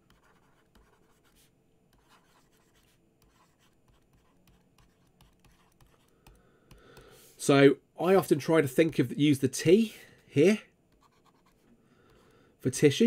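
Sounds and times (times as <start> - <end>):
stylus writing on tablet: 0.0 - 7.1, 10.9 - 13.0.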